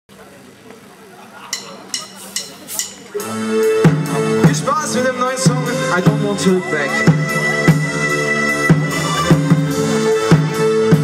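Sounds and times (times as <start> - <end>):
rock band playing: 1.5 - 11.0.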